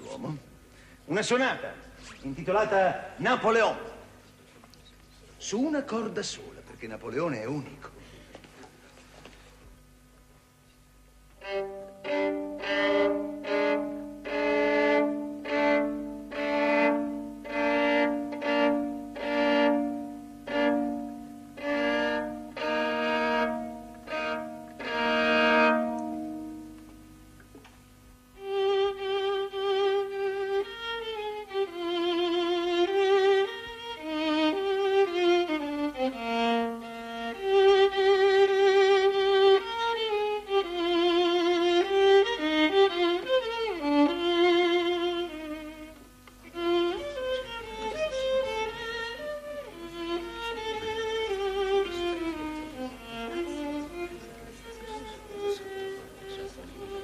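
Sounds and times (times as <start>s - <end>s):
solo violin playing: 11.3s - 27.1s, 28.3s - 57.0s.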